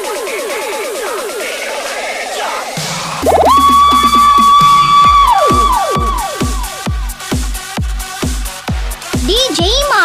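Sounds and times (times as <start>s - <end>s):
pitch-dropping kick drums: 2.8s - 10.0s
held high synth note: 3.2s - 7.0s.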